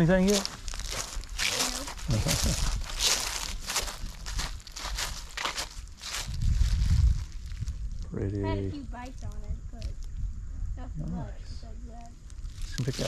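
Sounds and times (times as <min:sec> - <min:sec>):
footsteps crunching dry leaves: 0:00.0 - 0:08.0
low rumble on microphone: 0:00.0 - 0:13.0.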